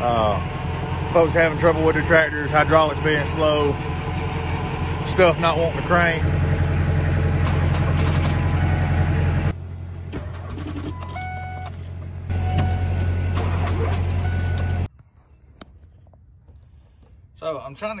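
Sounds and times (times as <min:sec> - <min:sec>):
diesel engine cranking: 0:00.0 - 0:14.9.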